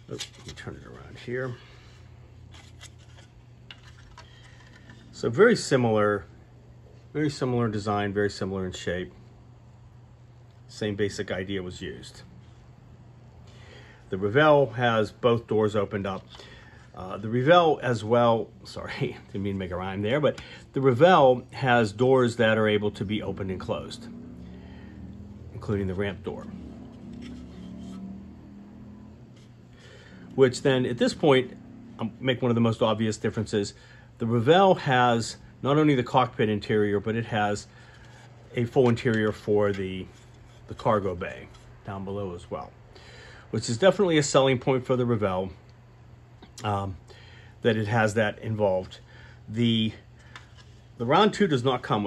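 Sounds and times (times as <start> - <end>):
steady low hum: 0.0 - 52.0
plastic parts clicking and rubbing: 2.5 - 5.2.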